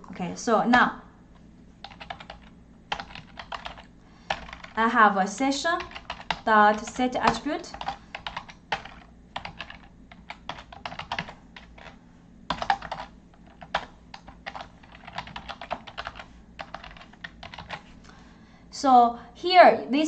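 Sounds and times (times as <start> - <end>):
keyboard typing clicks: 1.8 - 4.8, 5.8 - 17.8.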